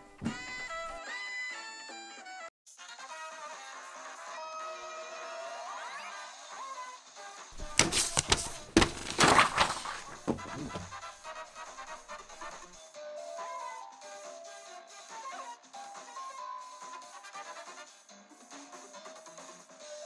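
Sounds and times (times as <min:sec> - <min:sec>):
handling knocks and rustling: 0:00.0 - 0:01.0, 0:07.6 - 0:12.7.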